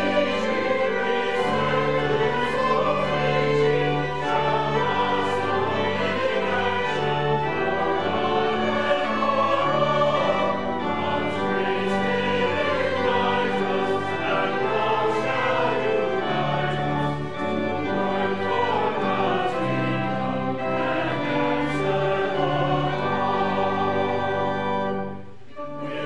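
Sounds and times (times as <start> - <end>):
choir singing: 0.0 - 26.0
violins: 0.0 - 26.0.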